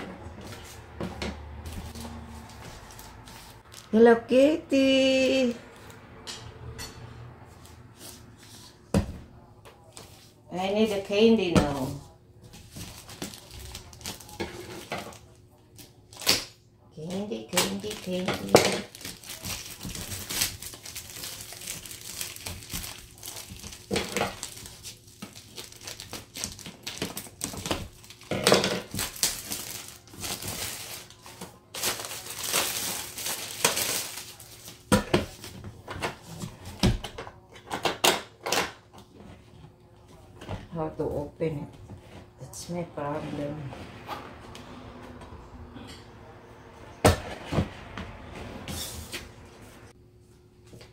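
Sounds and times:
plastic wrapping crinkling: 0:12.6 - 0:15.3, 0:17.5 - 0:35.5.

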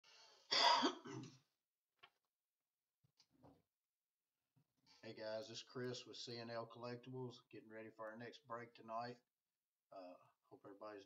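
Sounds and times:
man clearing his throat: 0:00.5 - 0:01.4.

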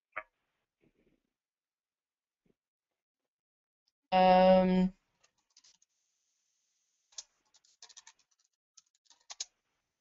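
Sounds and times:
computer keyboard typing: 0:07.2 - 0:09.5.

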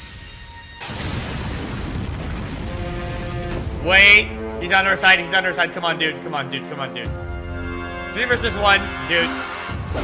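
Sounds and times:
background music: 0:00.0 - 0:10.0
fiery blast with deep rumble: 0:00.8 - 0:04.0.

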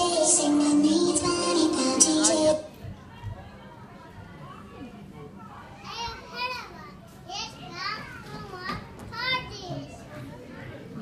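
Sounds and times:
background murmur: 0:00.0 - 0:11.0.

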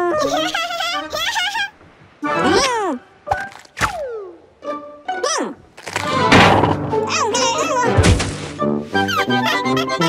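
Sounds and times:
background music: 0:02.2 - 0:10.0
heavy thunk: 0:06.1 - 0:07.0, 0:08.0 - 0:08.6.

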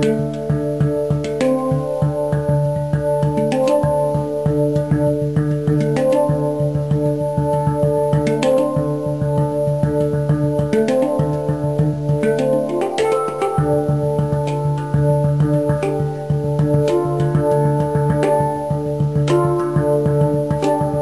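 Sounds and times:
background music with held chords: 0:00.0 - 0:21.0.

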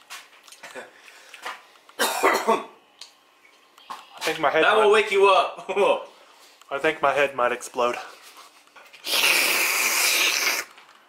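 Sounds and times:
man coughing: 0:02.0 - 0:02.8.

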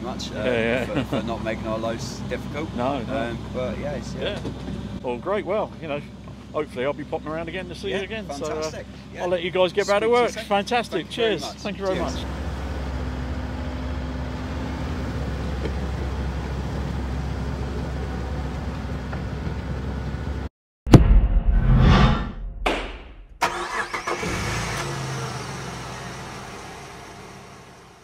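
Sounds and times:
excavator diesel engine running: 0:06.7 - 0:20.5
sharp knock sound effect: 0:20.9 - 0:23.4
loud hit sound effect: 0:20.9 - 0:23.5.

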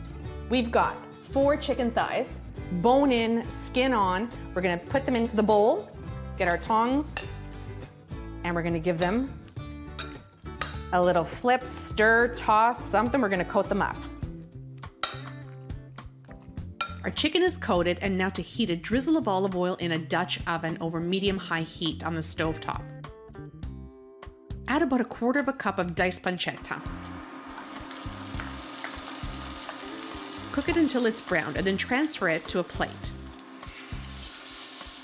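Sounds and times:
metal tongs clinking on glass bowl: 0:15.0 - 0:15.4
meat sizzling in hot oil: 0:27.2 - 0:35.0.

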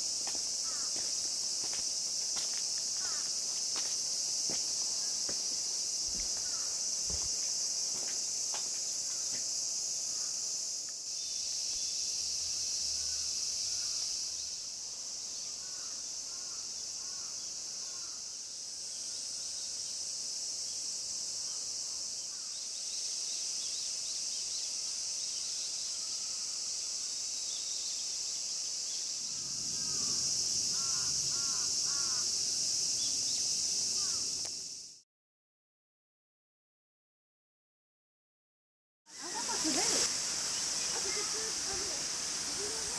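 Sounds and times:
cicadas chorus: 0:00.0 - 0:35.0, 0:39.1 - 0:42.9.

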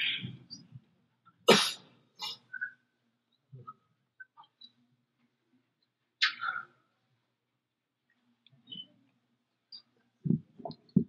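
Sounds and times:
person coughing: 0:01.5 - 0:02.4.

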